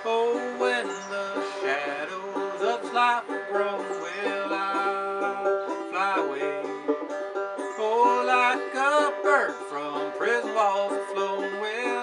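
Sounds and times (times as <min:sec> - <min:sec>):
person singing: 0:00.0 - 0:06.9, 0:07.6 - 0:12.0
fretless banjo playing: 0:00.0 - 0:12.0.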